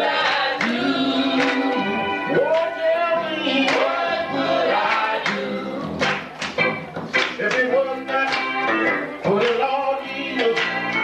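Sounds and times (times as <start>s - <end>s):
male group singing in harmony: 0.0s - 6.0s, 7.4s - 11.0s
electric guitar: 0.0s - 11.0s.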